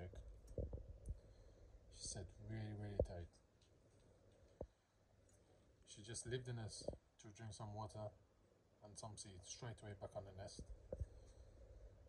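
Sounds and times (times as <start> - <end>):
soft low thumps: 0.0 - 1.3, 2.9 - 3.3, 10.6 - 11.3.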